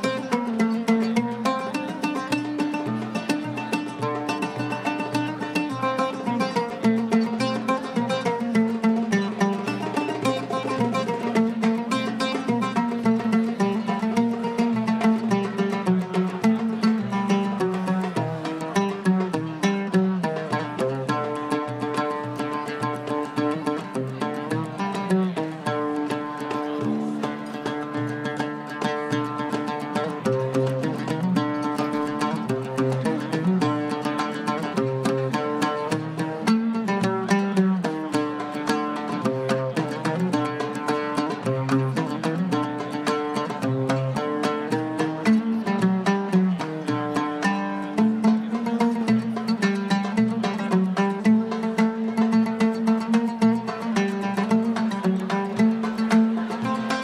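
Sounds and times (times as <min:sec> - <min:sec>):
oud melody: 0:00.0 - 0:57.0.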